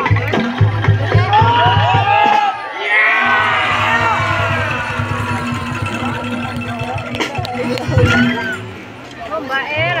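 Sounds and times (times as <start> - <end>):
bamboo slit-drum ensemble beat: 0.0 - 8.7.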